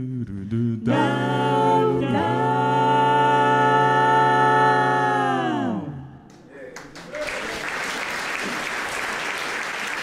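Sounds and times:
a cappella group singing: 0:00.0 - 0:06.3.

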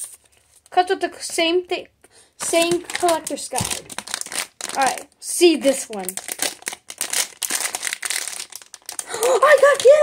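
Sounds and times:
plastic wrapper crinkling: 0:02.4 - 0:10.0.

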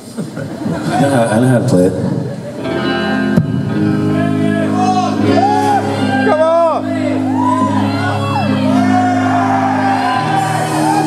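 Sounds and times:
rock band playing held chords: 0:02.1 - 0:11.0.

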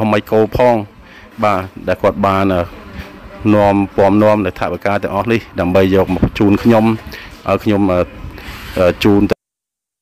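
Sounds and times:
person talking: 0:00.0 - 0:09.4.

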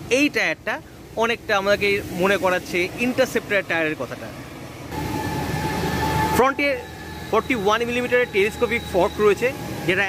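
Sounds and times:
steady horn-like tone: 0:05.0 - 0:09.8.

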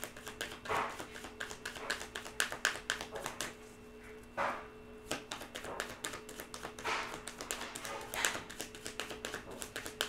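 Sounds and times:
cards shuffled by hand: 0:00.0 - 0:03.6, 0:05.1 - 0:10.0.

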